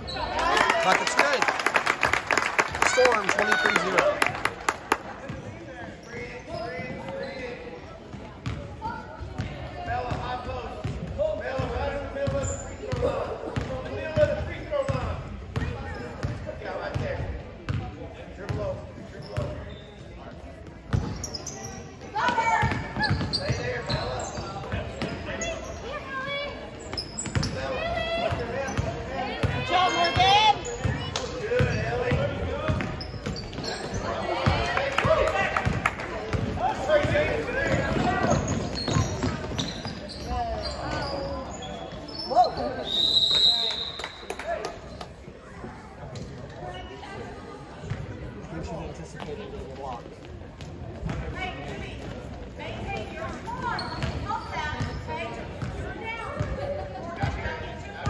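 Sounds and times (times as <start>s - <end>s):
voices echoing in a gym: 0.0s - 58.0s.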